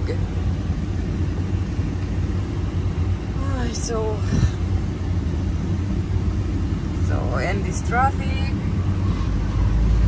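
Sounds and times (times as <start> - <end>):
road noise: 0.0 - 10.0
truck engine rumble: 0.0 - 10.0.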